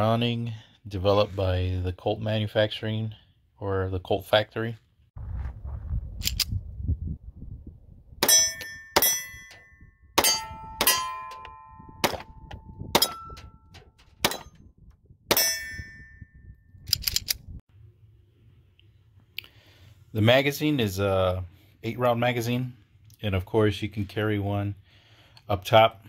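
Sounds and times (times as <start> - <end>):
wind rumble on microphone: 5.2 - 8.2, 9.6 - 17.6
steel targets ringing: 8.2 - 12.3, 13.0 - 14.6, 15.3 - 16.3
pistol shots: 12.0 - 12.3, 12.9 - 13.5.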